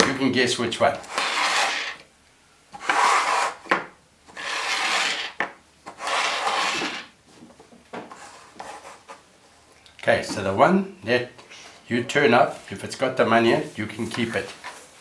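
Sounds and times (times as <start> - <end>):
plastic cups scraping on tabletop: 1.0 - 2.0, 2.8 - 3.7, 4.3 - 7.2.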